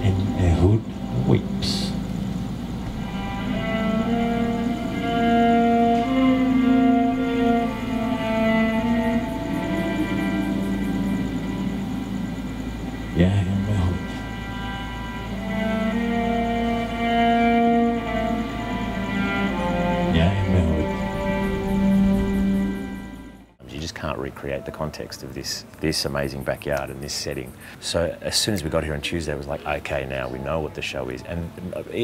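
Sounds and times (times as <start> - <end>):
cello playing long notes: 2.8 - 23.5.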